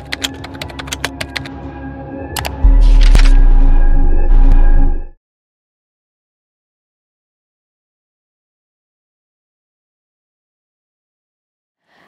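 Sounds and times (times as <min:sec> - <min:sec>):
keyboard typing clicks: 0:00.0 - 0:01.5, 0:02.4 - 0:03.4
steady music bed: 0:01.3 - 0:05.2
deep bass hit with swish: 0:02.6 - 0:05.2.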